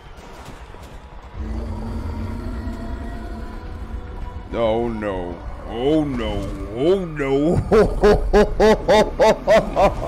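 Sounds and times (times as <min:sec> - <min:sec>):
sustained drone music: 0:01.2 - 0:10.0
low rumble: 0:01.3 - 0:10.0.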